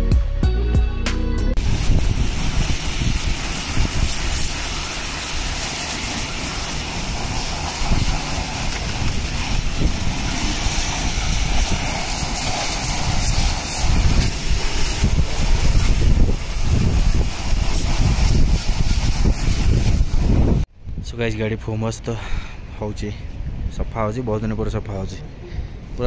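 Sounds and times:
pressure washer spraying water: 1.6s - 20.7s.

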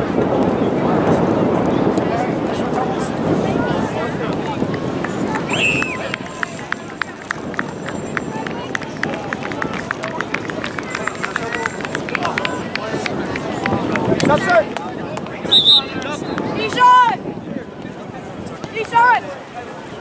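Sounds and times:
people talking and calling out: 0.0s - 20.0s.

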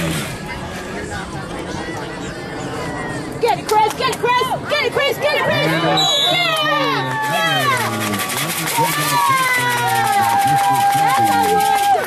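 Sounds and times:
spectators shouting and cheering: 0.4s - 12.0s.

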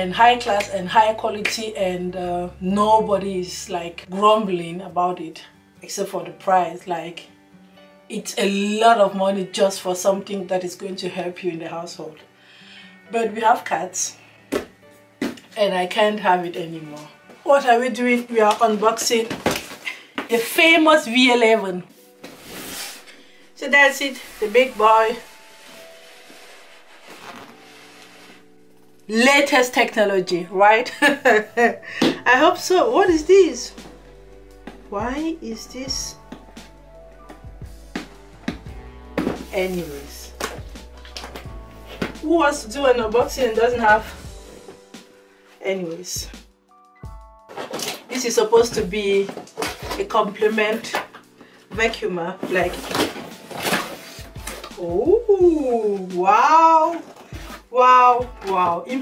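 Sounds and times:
cardboard scraping and rustling: 22.0s - 28.5s, 39.1s - 42.2s, 47.5s - 48.1s, 52.4s - 54.8s
person speaking: 23.6s - 25.3s, 39.4s - 40.5s.

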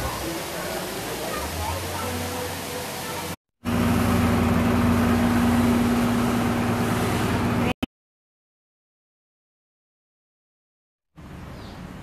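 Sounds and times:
running water from waterfall: 0.0s - 7.8s.

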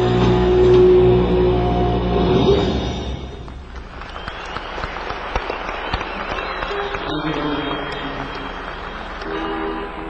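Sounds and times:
arena crowd noise: 3.4s - 10.0s.

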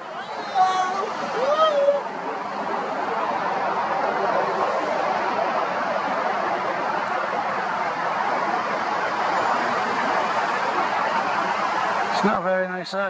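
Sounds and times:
road traffic rush: 0.0s - 13.0s.

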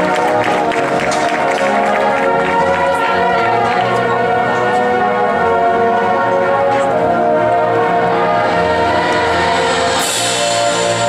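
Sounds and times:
brass band holding a loud chord: 0.0s - 11.0s.

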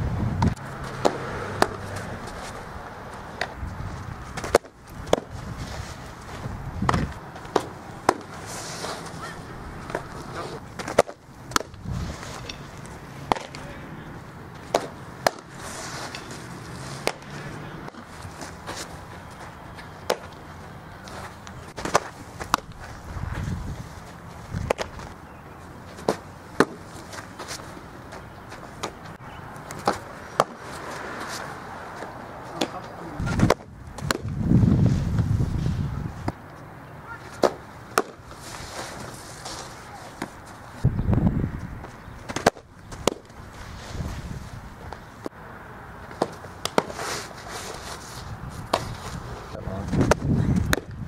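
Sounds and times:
softball smacking into gloves: 49.9s - 51.0s.

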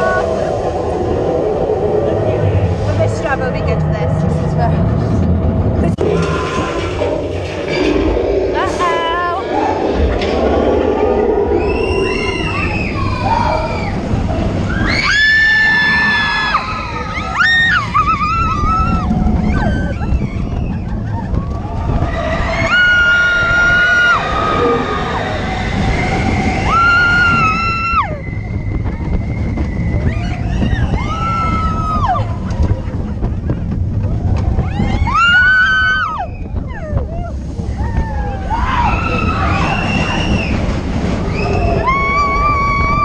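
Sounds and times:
coaster train rumbling on track: 0.0s - 43.0s
riders screaming: 14.7s - 28.5s, 34.6s - 43.0s.

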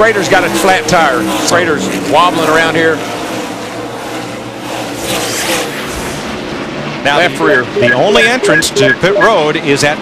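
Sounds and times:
race car engines passing: 0.0s - 10.0s.

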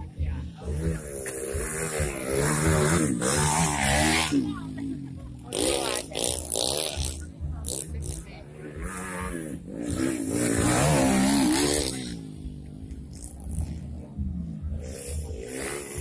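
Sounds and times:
dirt bike engine revving: 0.0s - 16.0s
spectators' voices: 0.0s - 16.0s.

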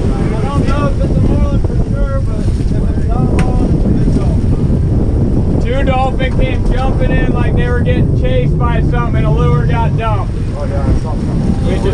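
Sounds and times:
boat engine rumble: 0.0s - 11.9s
water churning in wake: 0.0s - 11.9s
wind buffeting microphone: 0.0s - 11.9s.

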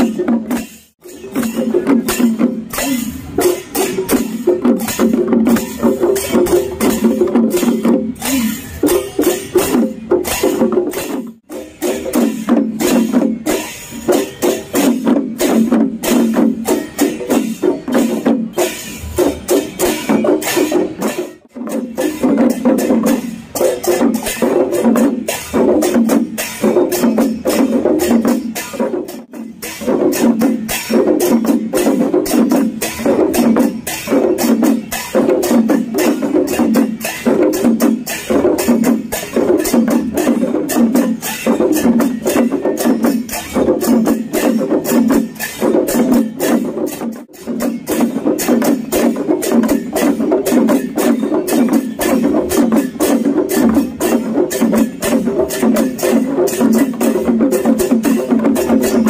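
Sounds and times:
barrel drums ensemble playing: 0.0s - 59.0s.

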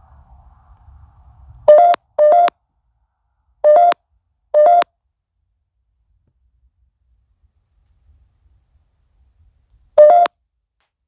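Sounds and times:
electronic beeps: 1.7s - 2.5s, 3.6s - 4.0s, 4.6s - 4.9s, 10.0s - 10.3s.

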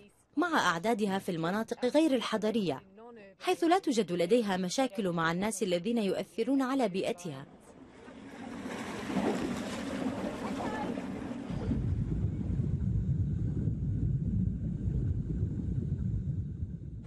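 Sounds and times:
wind: 0.0s - 17.0s
water noise: 7.5s - 17.0s
loud low rumble: 11.1s - 17.0s.

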